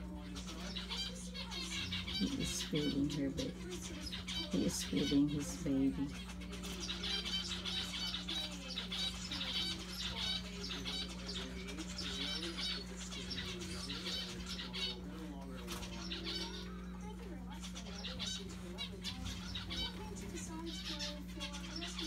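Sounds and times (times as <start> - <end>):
finches chirping: 0.0 - 22.0
steady low hum: 0.0 - 22.0.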